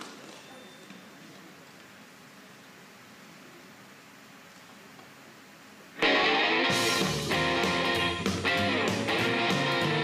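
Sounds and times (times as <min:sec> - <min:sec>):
steady hiss: 0:00.0 - 0:09.1.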